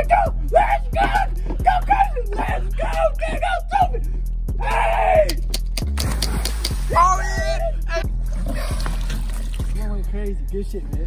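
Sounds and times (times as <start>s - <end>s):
people shouting and yelling: 0.0s - 5.4s, 6.8s - 8.8s
background music: 0.0s - 11.0s
water noise: 5.8s - 9.8s
body splashing into water: 5.9s - 7.0s, 8.3s - 9.7s.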